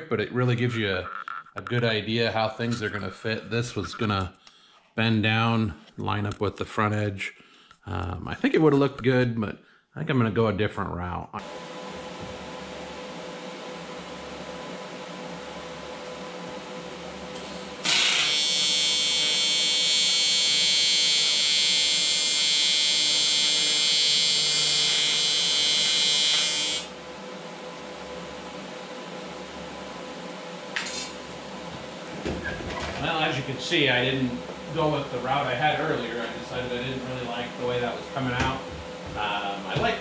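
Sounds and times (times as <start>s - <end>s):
steady hum: 0.0s - 10.6s, 11.4s - 40.0s
welding arc buzzing: 17.1s - 27.0s.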